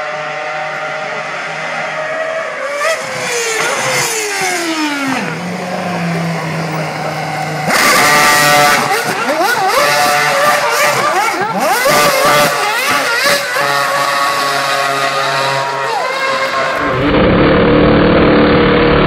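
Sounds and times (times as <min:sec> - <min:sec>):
race car engine revving: 0:00.0 - 0:19.0
tyres screeching: 0:03.0 - 0:17.1.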